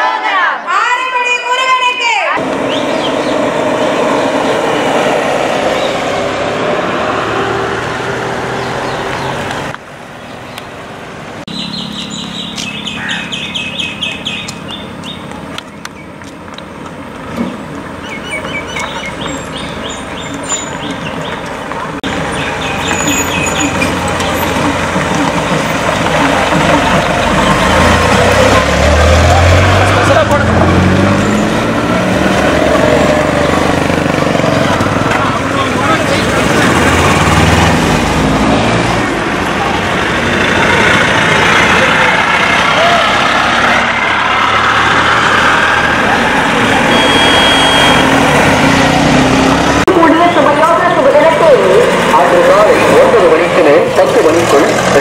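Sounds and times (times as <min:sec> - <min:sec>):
diesel trucks driving past: 0:02.3 - 0:55.0
people's voices: 0:18.1 - 0:37.4, 0:39.1 - 0:48.5, 0:49.8 - 0:55.0.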